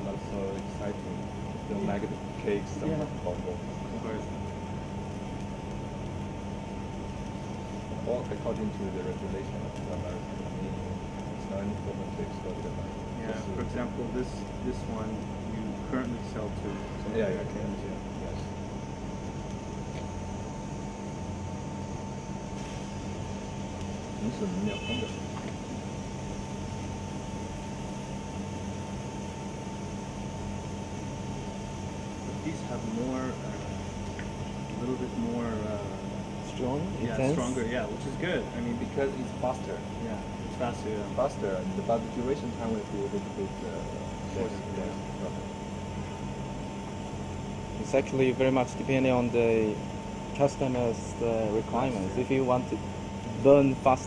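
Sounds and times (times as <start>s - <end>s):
sparkler fizzing hiss: 0.0s - 4.3s
faint steady tone: 5.7s - 46.8s.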